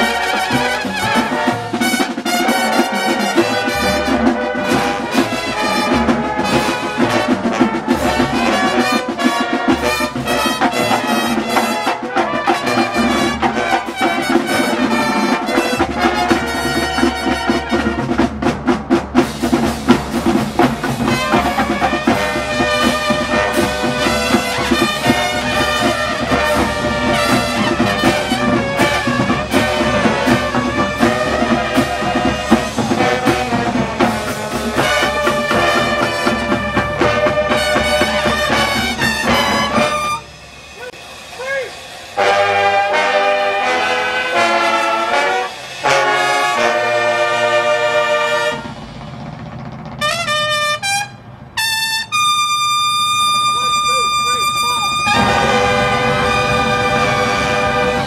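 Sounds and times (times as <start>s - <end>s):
drum corps horns and drums: 0.0s - 58.0s.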